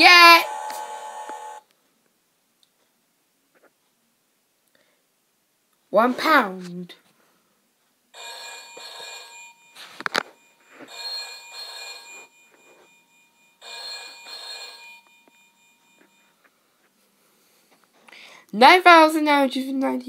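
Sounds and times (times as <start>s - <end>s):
electronic telephone ringing: 8.2s - 16.5s.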